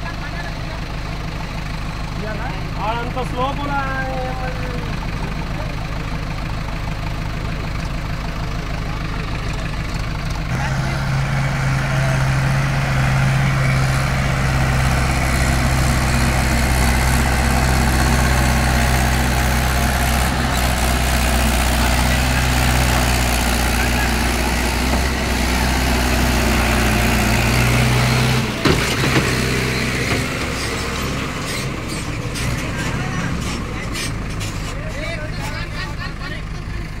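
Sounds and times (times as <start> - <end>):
tractor diesel engine running: 0.0 - 37.0.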